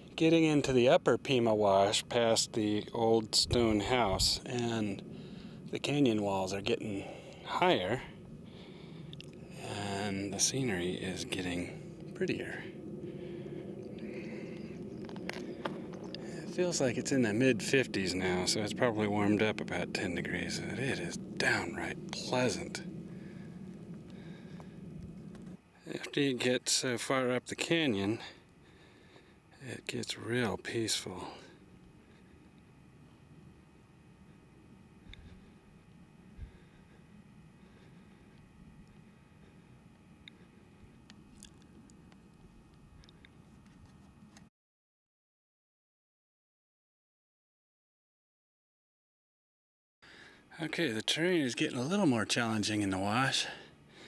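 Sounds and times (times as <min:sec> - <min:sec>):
camera handling rumble: 0:14.6 - 0:16.3
footsteps on rocky gravel: 0:15.0 - 0:16.3.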